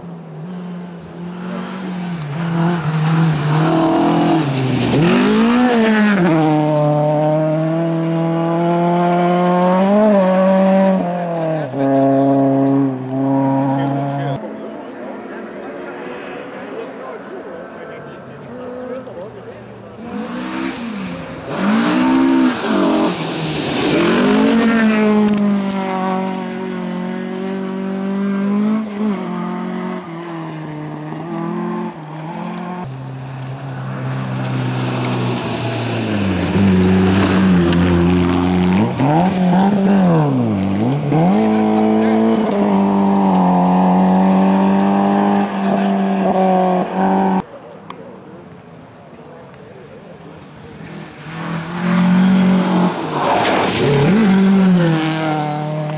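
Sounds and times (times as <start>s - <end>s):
rally car engine revving: 0.3s - 14.5s, 18.4s - 47.5s, 50.7s - 55.9s.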